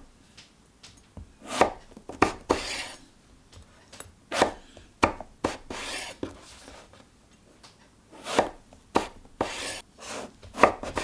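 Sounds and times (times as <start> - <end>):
knife scraping rasp: 1.4 - 3.0, 5.4 - 6.8, 8.1 - 11.0.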